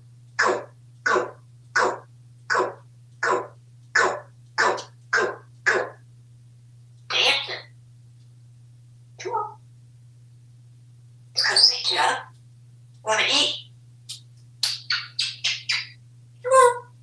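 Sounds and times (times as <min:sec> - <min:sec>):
parrot making cough-like sounds: 0:00.4 - 0:06.0.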